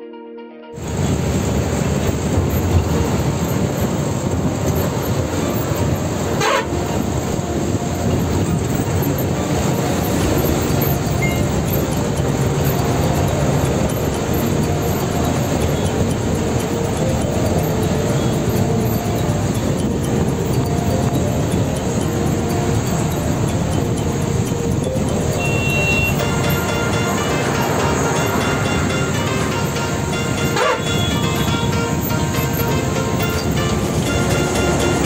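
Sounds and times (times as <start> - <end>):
bus diesel engine rumbling: 0.8 - 35.0.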